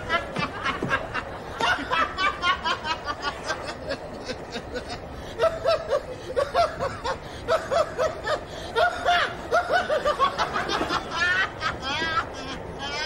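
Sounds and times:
man laughing: 0.0s - 13.0s.

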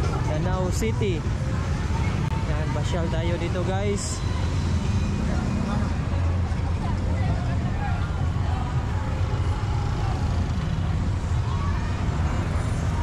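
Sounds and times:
faint crowd voices: 0.0s - 13.0s
vehicles passing: 0.0s - 13.0s.

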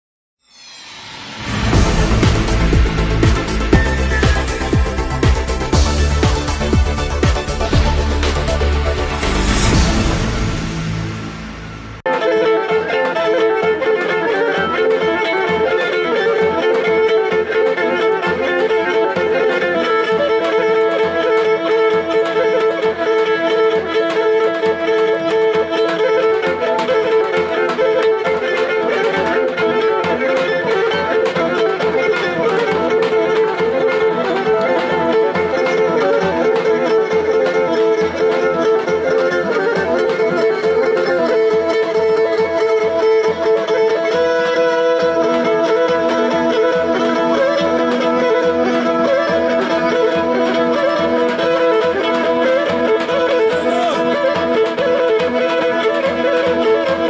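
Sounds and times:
steady drone note: 0.4s - 12.1s
fiddle melody: 0.4s - 57.0s
large drum beat: 1.4s - 12.0s.

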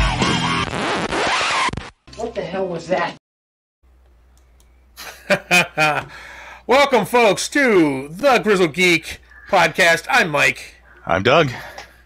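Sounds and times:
scratchy noise sweep: 0.2s - 1.9s.

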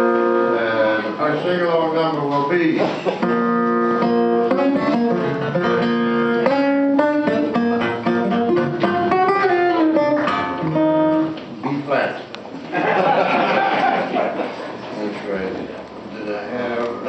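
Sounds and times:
guitar playing held notes and chords: 0.0s - 1.2s, 3.2s - 11.6s.

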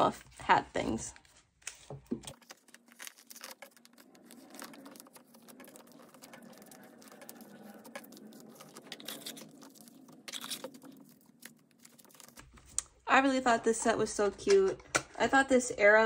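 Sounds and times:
plastic pages rustling: 1.2s - 12.8s.

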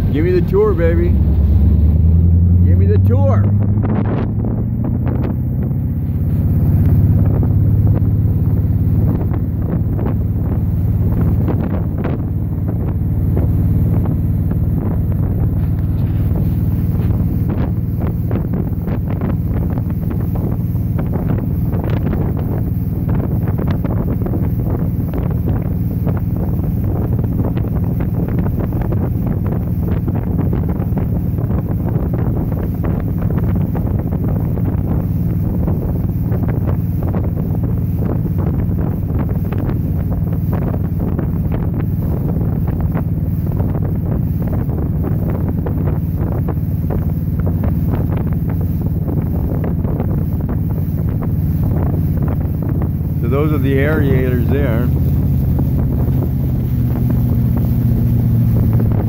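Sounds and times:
motorboat engine drone: 0.0s - 59.0s
water spraying off hull: 0.0s - 59.0s
wind buffeting microphone: 0.0s - 59.0s.

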